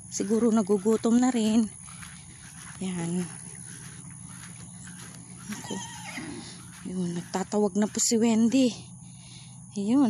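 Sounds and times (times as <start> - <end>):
horse whinnying: 5.5 - 6.6.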